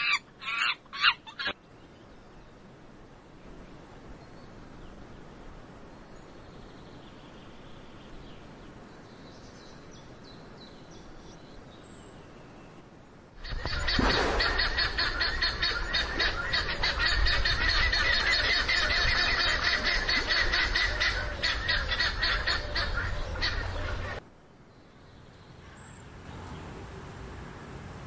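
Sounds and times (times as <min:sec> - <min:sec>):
birds chirping and squawking: 0:00.0 - 0:01.6, 0:13.4 - 0:24.2.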